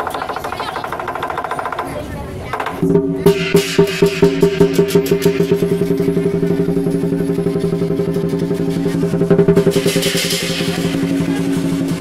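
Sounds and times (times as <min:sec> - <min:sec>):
drum beating: 0:00.0 - 0:12.0
cymbals crashing: 0:02.8 - 0:12.0.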